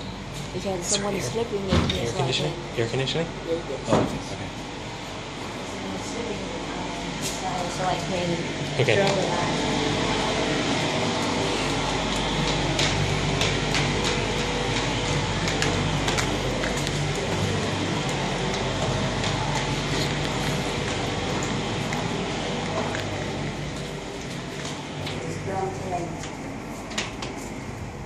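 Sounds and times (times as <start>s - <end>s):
indoor background hum and hiss: 0.0s - 28.0s.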